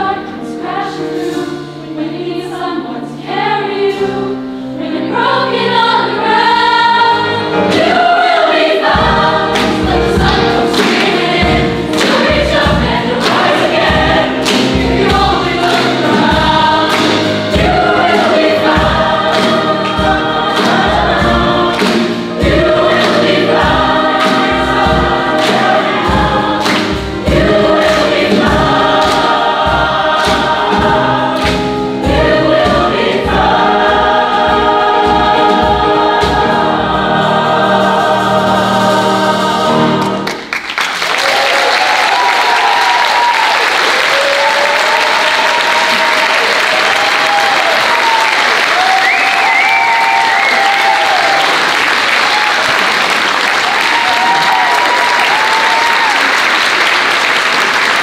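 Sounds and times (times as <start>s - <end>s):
choir singing gospel song: 0.0s - 40.5s, 41.2s - 58.0s
audience applause: 40.2s - 58.0s.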